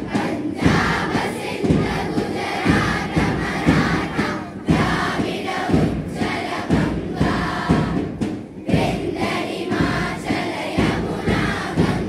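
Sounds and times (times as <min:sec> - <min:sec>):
group singing in unison: 0:00.0 - 0:12.0
strong beat: 0:00.0 - 0:12.0.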